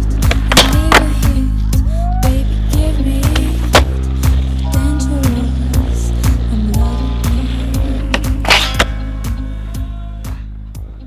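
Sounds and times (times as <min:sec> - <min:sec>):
music with beat and sliding bass: 0:00.0 - 0:11.0
skateboard clacks: 0:00.2 - 0:01.2.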